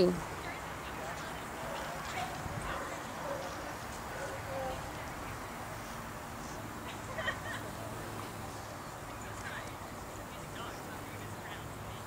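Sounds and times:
faint voices: 0.0 - 12.0
faint dog barks: 1.6 - 4.9.

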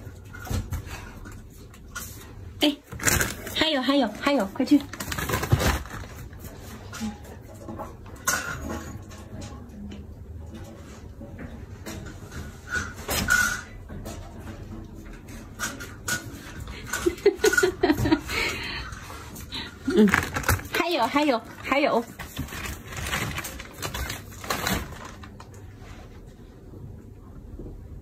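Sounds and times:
plastic pack rustling and knocking: 4.6 - 6.4, 19.8 - 25.5.

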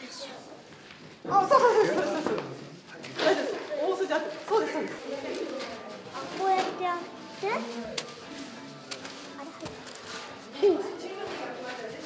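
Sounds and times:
people talking and exclaiming: 1.2 - 12.0.

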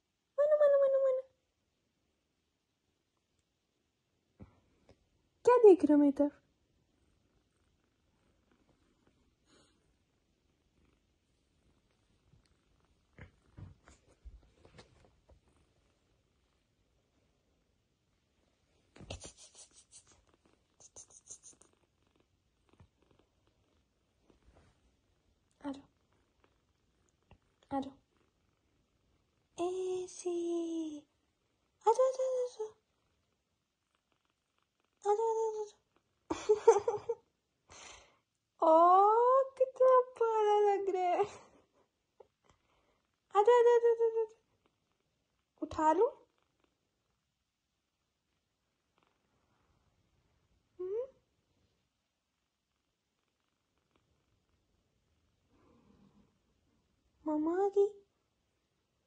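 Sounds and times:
woman speaking: 0.4 - 1.3, 5.4 - 6.4, 25.6 - 25.9, 27.7 - 28.0, 29.6 - 31.0, 31.8 - 32.7, 35.0 - 35.7, 38.6 - 41.4, 43.3 - 44.3, 45.6 - 46.2, 57.2 - 58.0
woman's sing-song cooing call: 0.4 - 1.3
scratching and rustling on fabric: 18.8 - 21.7.

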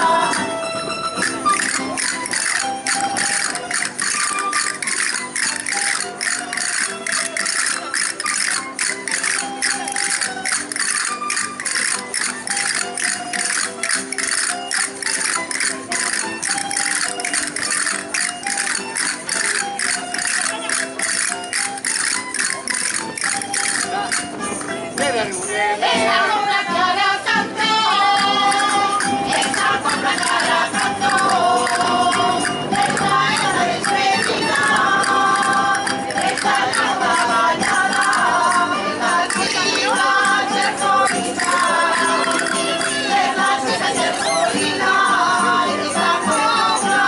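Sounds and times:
plucked-string folk melody: 0.0 - 47.0
castanets clicking: 1.2 - 24.3.

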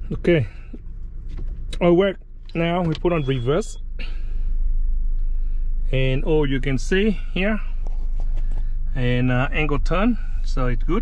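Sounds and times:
minivan engine idling: 0.0 - 11.0.

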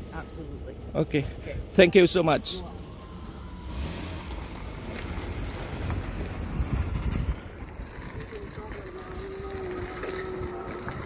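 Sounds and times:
vehicle engine hum: 0.0 - 11.0
wind rumbling on microphone: 4.7 - 11.0.

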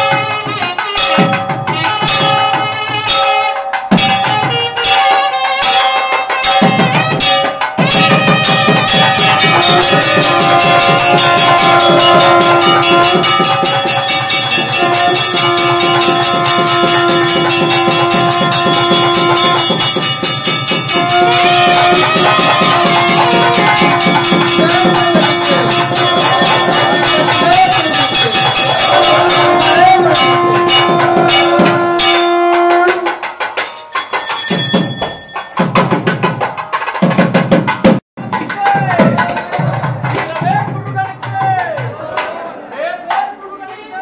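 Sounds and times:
bells ringing: 0.0 - 32.6, 33.3 - 36.6
fast percussion strokes: 0.0 - 42.4
long held notes: 8.0 - 33.2.

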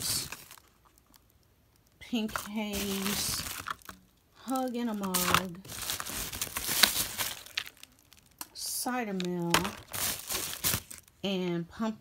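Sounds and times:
plastic packaging crinkling: 0.0 - 11.2.

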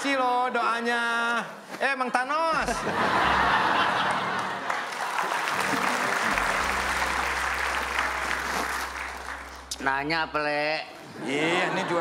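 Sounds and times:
studio audience applauding: 2.9 - 10.1.

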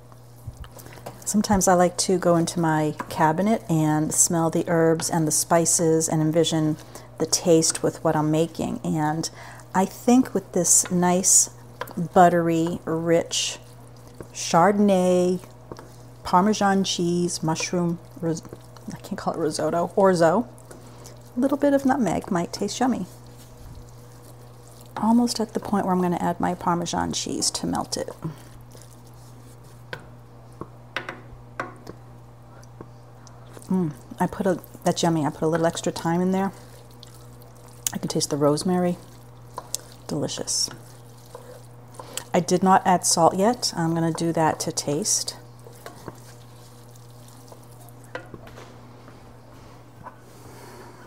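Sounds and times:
constant low hum: 0.0 - 51.0
food bubbling in a skillet: 11.5 - 30.2, 33.3 - 48.6.

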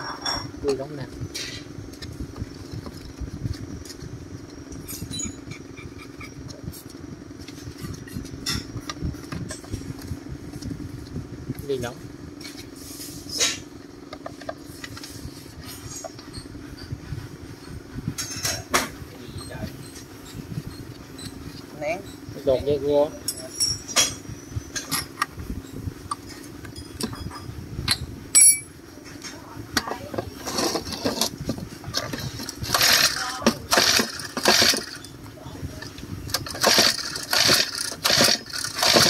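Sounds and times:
low mechanical hum: 0.0 - 39.0
metal parts clinking: 23.2 - 25.2, 28.4 - 28.8.

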